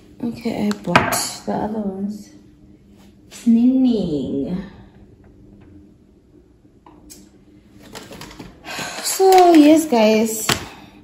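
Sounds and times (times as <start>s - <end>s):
packet rustling: 7.8s - 10.1s.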